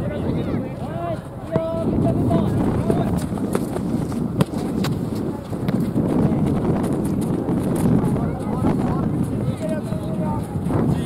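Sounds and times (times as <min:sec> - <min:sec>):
wind buffeting microphone: 0:00.0 - 0:11.0
running footsteps on dirt: 0:00.5 - 0:11.0.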